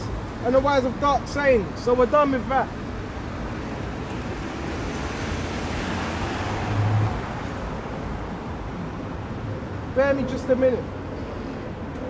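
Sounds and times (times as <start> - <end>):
steady traffic hum: 0.0 - 12.0
car passing: 2.6 - 12.0.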